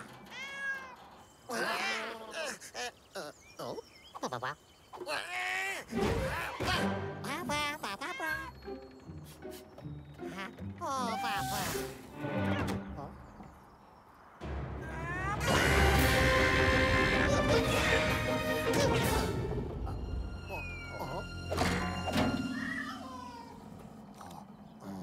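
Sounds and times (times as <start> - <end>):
cartoon creatures yelling and babbling: 1.5 - 8.6, 10.3 - 11.8, 14.8 - 19.3, 22.4 - 23.8
cartoon music: 6.2 - 9.0, 14.6 - 23.7.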